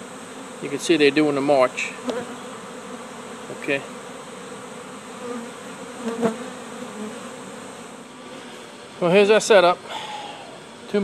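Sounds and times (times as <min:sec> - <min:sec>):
bees buzzing: 0:00.0 - 0:11.0.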